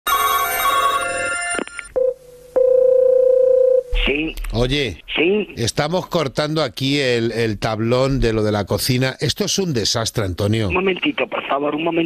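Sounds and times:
telephone ringing: 0.0s - 3.8s
steady telephone line tone: 0.1s - 4.0s.

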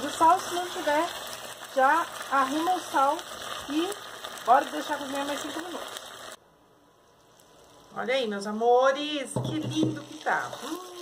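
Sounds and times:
faint sizzle in a pot: 0.0s - 11.0s.

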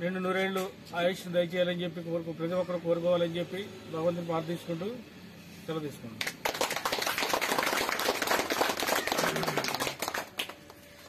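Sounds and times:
people clapping: 6.2s - 11.0s.

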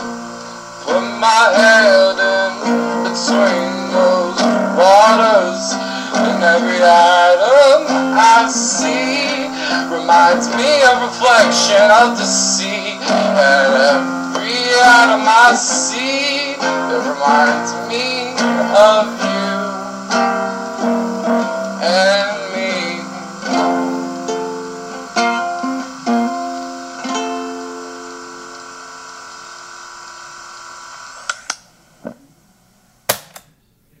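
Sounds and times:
person singing: 0.0s - 28.4s
acoustic guitar: 0.0s - 29.8s.

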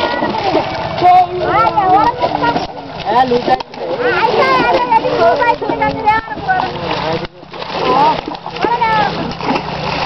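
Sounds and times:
water splashing: 0.0s - 10.0s.

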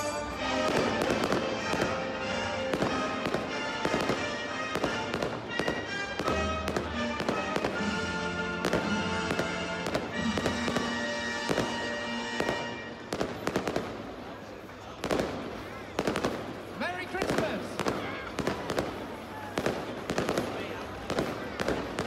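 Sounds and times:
music playing: 0.0s - 13.8s
fireworks bangs and pops: 0.5s - 22.0s.

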